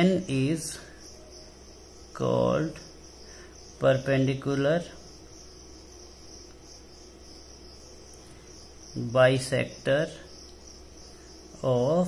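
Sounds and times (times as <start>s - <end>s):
high-pitched insect trilling: 0.0s - 12.0s
low steady hum: 0.0s - 12.0s.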